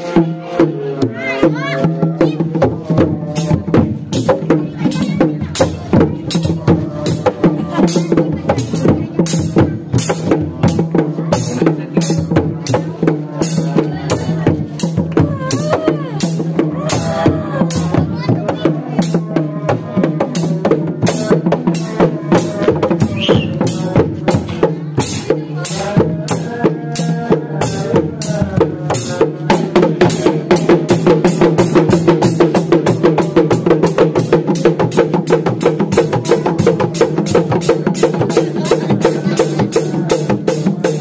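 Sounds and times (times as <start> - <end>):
hand drums beating: 0.0 - 41.0.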